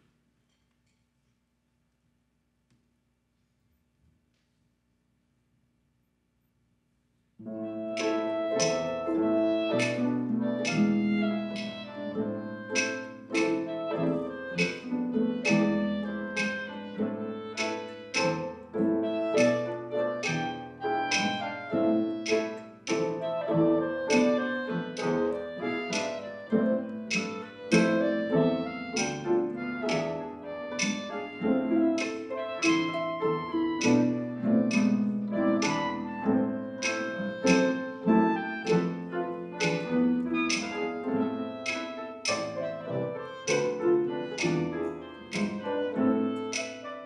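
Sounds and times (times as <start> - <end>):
orchestra of strings harp and piano: 7.4 - 47.0.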